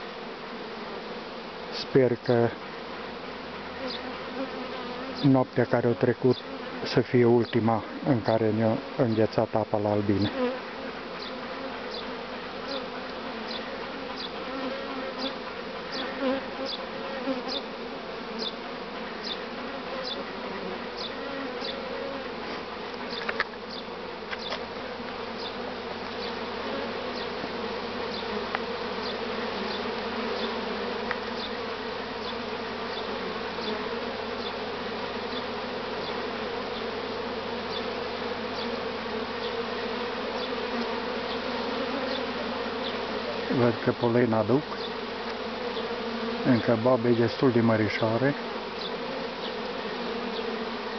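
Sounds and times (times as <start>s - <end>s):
honey bees buzzing: 0.0s - 50.9s.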